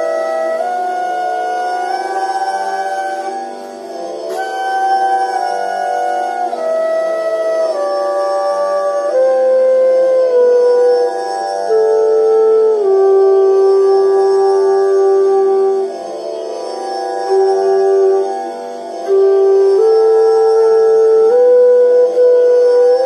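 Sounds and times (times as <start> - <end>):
bamboo flute playing held notes: 0.0 - 23.0
tanpura drone: 0.0 - 23.0.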